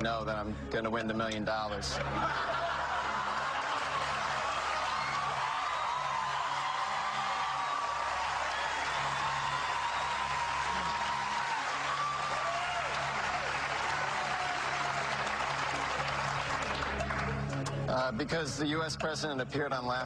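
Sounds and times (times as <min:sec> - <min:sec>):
studio audience applauding: 0:02.0 - 0:19.1
low sustained music bed: 0:08.1 - 0:20.0.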